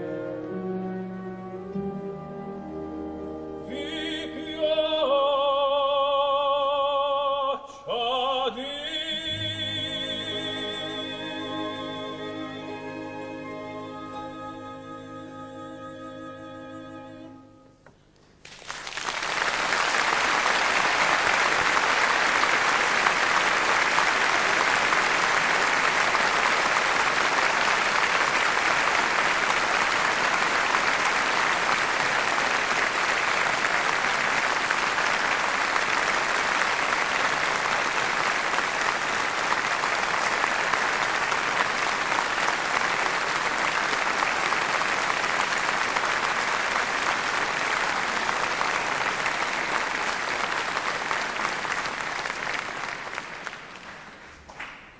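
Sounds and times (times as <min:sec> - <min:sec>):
audience applauding: 0:18.4 - 0:54.9.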